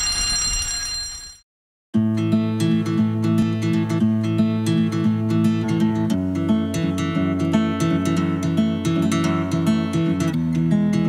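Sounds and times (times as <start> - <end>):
fire alarm ringing: 0.0 - 1.4.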